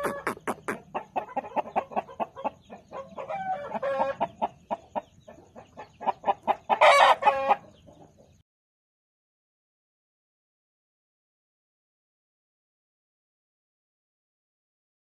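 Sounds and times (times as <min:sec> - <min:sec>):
rooster drawn-out call: 0:00.0 - 0:00.8
rooster clucking: 0:00.0 - 0:07.7.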